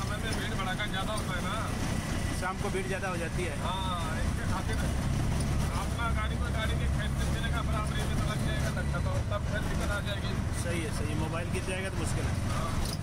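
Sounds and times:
auto-rickshaw engine running: 0.0s - 13.0s
road and traffic noise: 0.0s - 13.0s.

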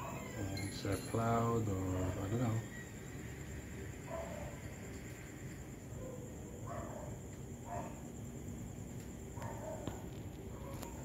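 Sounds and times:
low background noise: 0.0s - 11.0s.

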